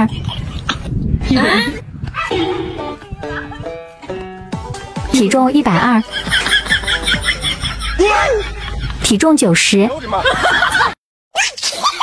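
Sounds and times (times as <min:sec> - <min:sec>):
laughter: 0:06.0 - 0:09.0, 0:09.9 - 0:12.0.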